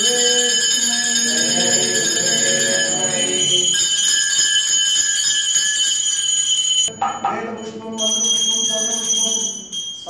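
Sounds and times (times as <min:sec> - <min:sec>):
bells ringing: 0:00.0 - 0:10.0.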